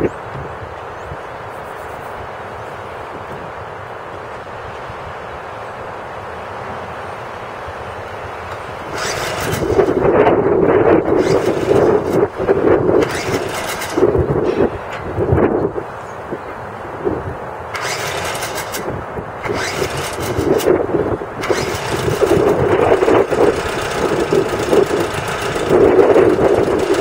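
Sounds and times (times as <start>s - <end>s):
outboard motor running unevenly: 21.4s - 27.0s.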